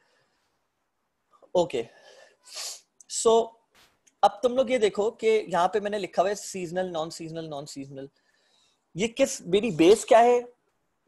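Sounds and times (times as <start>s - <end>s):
man's breathy hiss: 2.0s - 2.9s.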